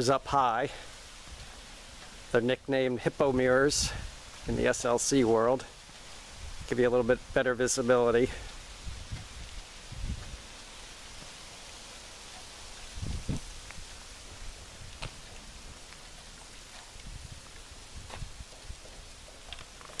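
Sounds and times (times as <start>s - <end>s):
outdoor background hiss: 0.0s - 20.0s.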